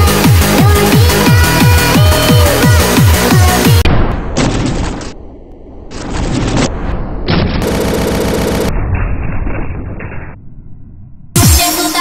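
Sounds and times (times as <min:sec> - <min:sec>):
rapid machine-gun shots: 0:07.4 - 0:08.8.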